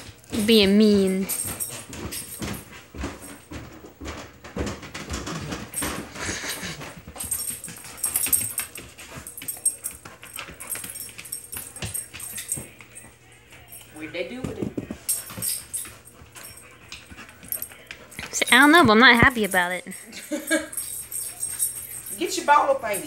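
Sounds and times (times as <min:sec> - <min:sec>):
paws and toy clicking on floor: 0:00.0 - 0:19.8, 0:20.5 - 0:23.0
collar tags jingling: 0:00.0 - 0:23.0.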